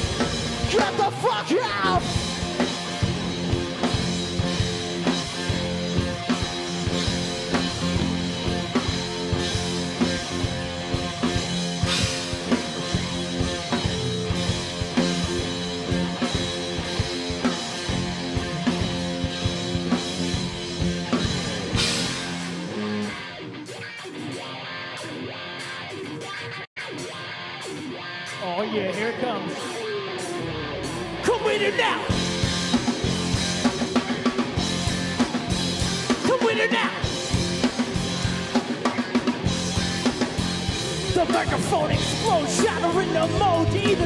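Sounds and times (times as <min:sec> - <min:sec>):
quiet electric guitar: 0:00.0 - 0:44.0
rock band playing loud: 0:00.0 - 0:44.0.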